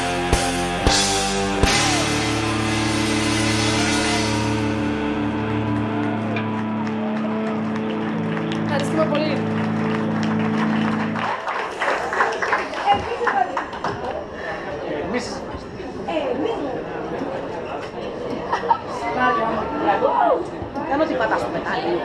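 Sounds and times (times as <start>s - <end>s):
cymbals: 0.0s - 5.7s
bass: 0.0s - 11.4s
electric guitar chord ringing: 0.0s - 11.4s
crowd cheering and clapping: 0.0s - 14.6s.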